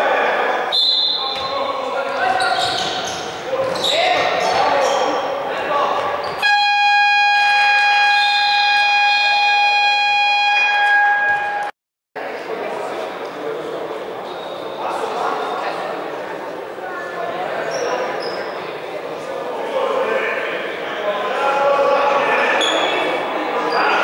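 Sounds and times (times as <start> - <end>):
scoreboard buzzer: 6.4 - 11.7.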